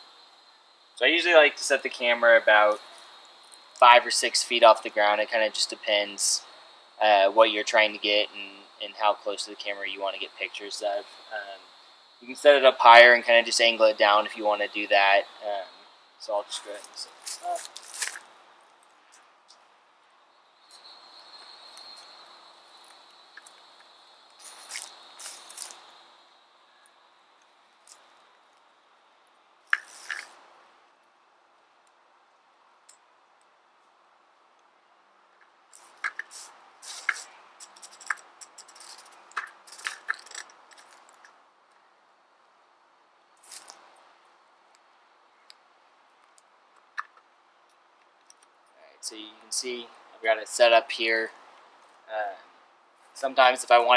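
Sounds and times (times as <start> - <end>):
steady high buzz: 0.0 - 33.2.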